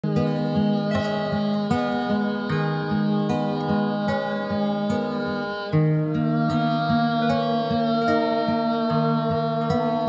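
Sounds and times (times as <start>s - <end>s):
acoustic guitar slow melody: 0.0s - 10.0s.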